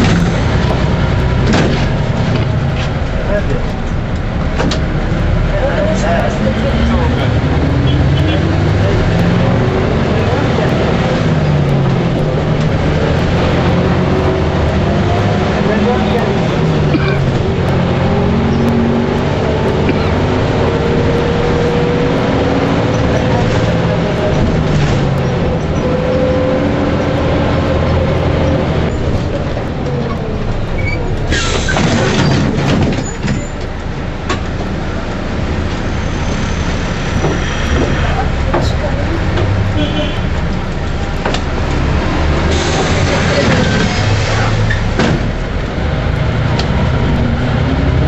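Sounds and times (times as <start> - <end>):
bus diesel engine: 0.0 - 48.0
air brakes hissing: 31.3 - 32.2, 42.4 - 44.9.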